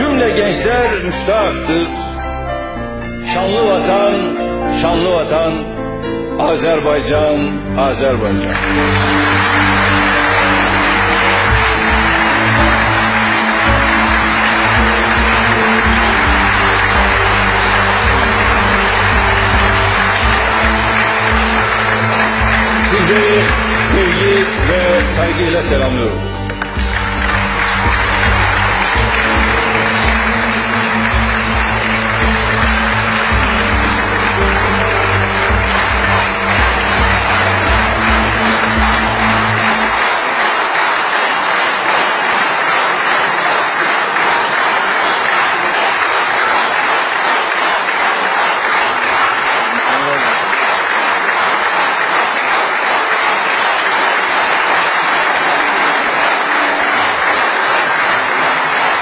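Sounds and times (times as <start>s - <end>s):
low background music: 0.0s - 40.9s
large audience applauding: 8.1s - 59.0s.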